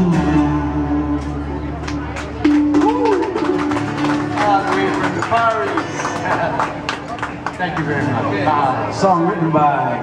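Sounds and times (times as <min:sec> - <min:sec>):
acoustic guitars and ukulele: 0:00.0 - 0:09.3.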